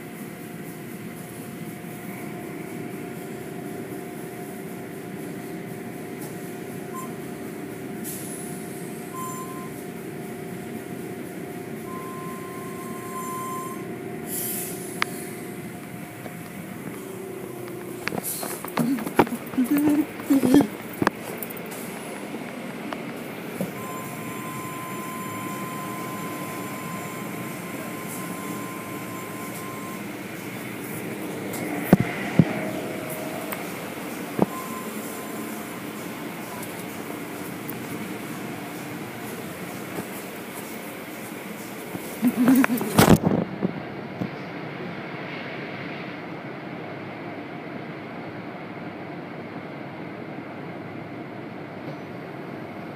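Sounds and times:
thin steady whine: 0.0s - 44.0s
car wash machinery humming: 0.0s - 52.9s.

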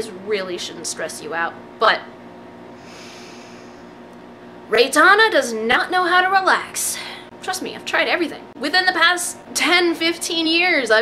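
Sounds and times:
low room hum: 0.0s - 11.0s
soft breath through nose: 2.8s - 4.0s.

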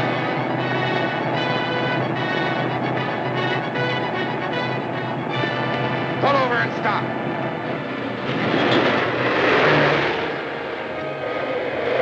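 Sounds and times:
truck driving past: 0.0s - 12.0s.

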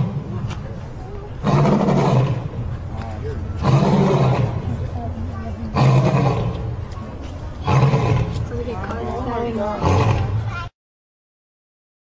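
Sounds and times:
lion roaring: 1.4s - 2.6s, 3.6s - 4.7s, 5.7s - 6.7s, 7.6s - 8.4s, 9.8s - 10.4s.

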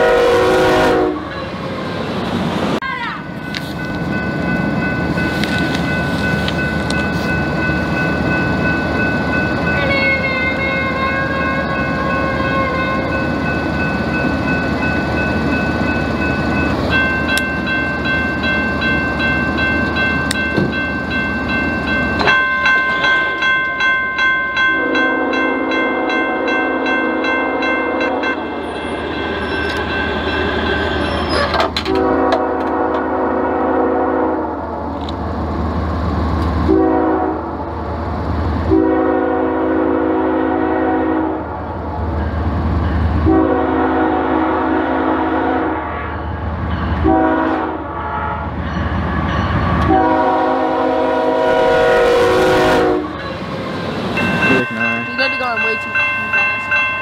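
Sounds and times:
locomotive air horn blasts: 0.0s - 1.3s, 9.8s - 13.2s, 24.8s - 28.3s, 31.9s - 34.6s, 36.7s - 37.5s, 38.7s - 41.5s, 43.2s - 46.2s, 47.0s - 48.6s, 49.8s - 53.2s.

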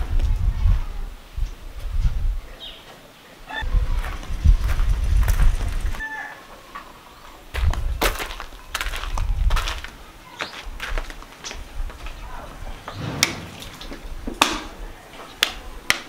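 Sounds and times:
wind buffeting microphone: 0.0s - 2.6s, 3.6s - 6.0s, 7.5s - 15.8s
footsteps scuffing on dirt: 4.0s - 6.0s, 7.5s - 12.2s.

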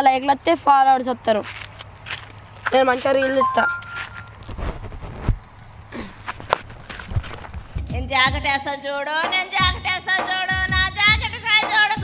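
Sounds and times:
footsteps on dry dirt: 1.3s - 7.9s
music: 7.8s - 12.0s.

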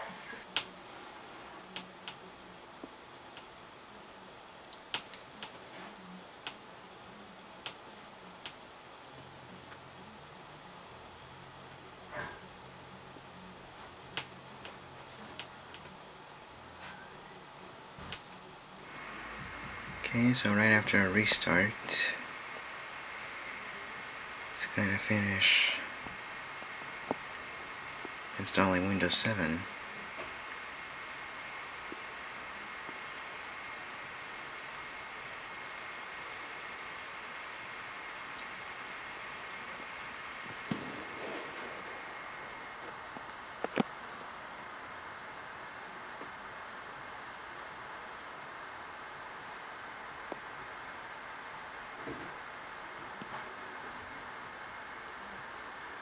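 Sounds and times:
faint high-pitched whine: 0.0s - 56.0s
faint low hum: 0.0s - 56.0s
steady hiss: 0.0s - 56.0s
rustling: 40.5s - 42.2s.

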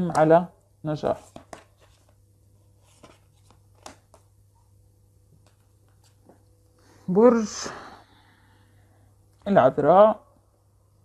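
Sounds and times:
woman speaking: 0.0s - 1.2s, 7.0s - 8.0s, 9.4s - 10.2s.

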